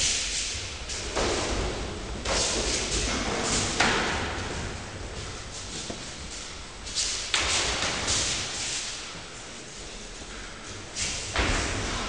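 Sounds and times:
rustling noise: 0:00.0 - 0:12.0.

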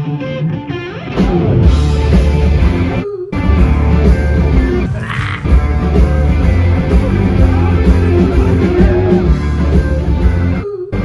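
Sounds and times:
rock band music: 0:00.0 - 0:10.6.

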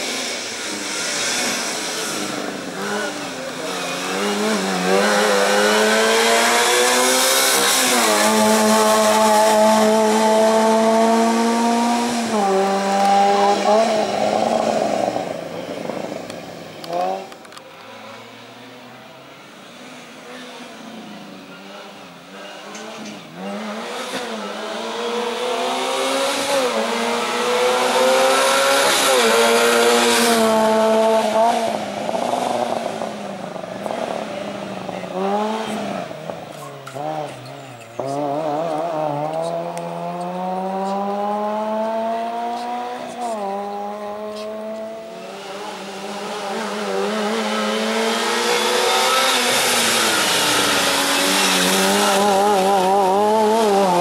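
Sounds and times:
car engine revving: 0:00.0 - 0:18.4, 0:19.6 - 0:54.0.

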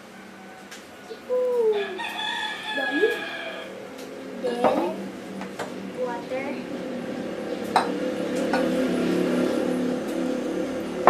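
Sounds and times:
rooster crowing: 0:00.0 - 0:05.9.

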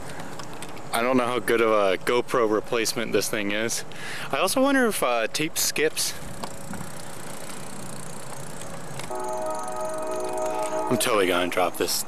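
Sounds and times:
bicycle riding rush: 0:06.0 - 0:12.0.

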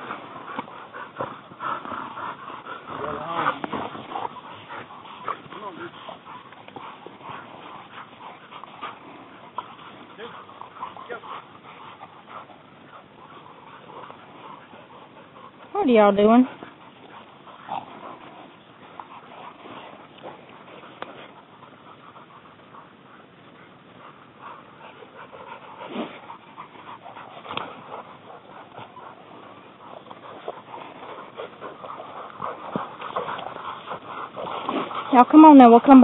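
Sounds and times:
dogs panting and whining: 0:00.0 - 0:36.0
rustling through brush: 0:00.0 - 0:36.0.

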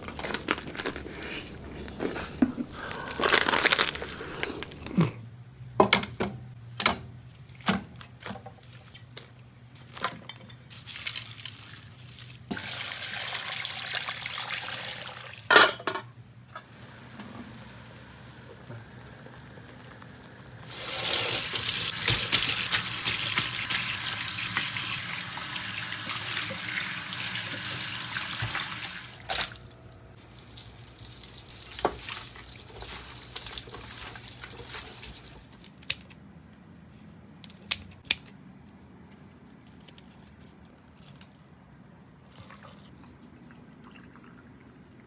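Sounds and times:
tap water running into colander: 0:12.5 - 0:15.5, 0:20.7 - 0:29.2.

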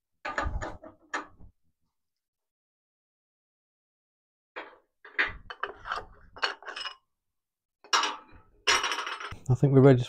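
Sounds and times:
metal tools clinking and knocking: 0:04.6 - 0:07.1, 0:07.8 - 0:09.4.

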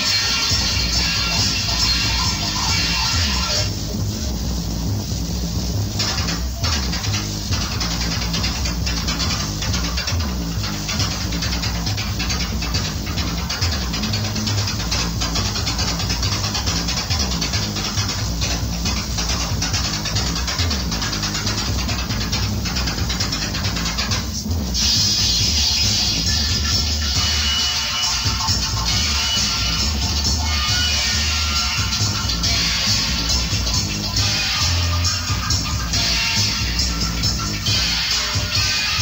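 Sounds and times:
reggae dub through sound system: 0:00.0 - 0:39.0.

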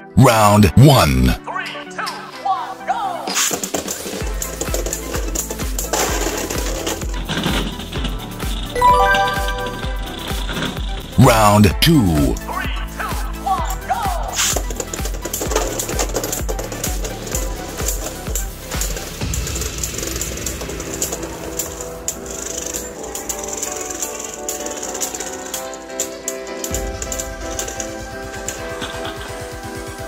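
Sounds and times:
background music with steady beat: 0:00.0 - 0:30.0
spinning tops clattering together: 0:20.2 - 0:29.1.

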